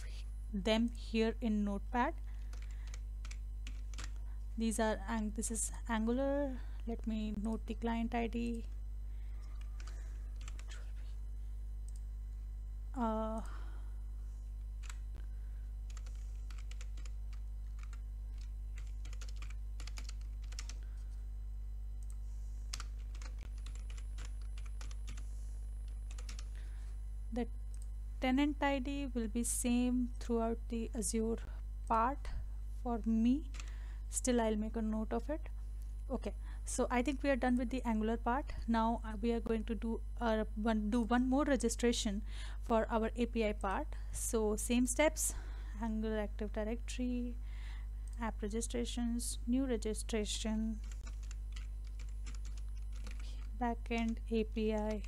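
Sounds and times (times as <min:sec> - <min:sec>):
low electrical hum: 0:00.0 - 0:55.0.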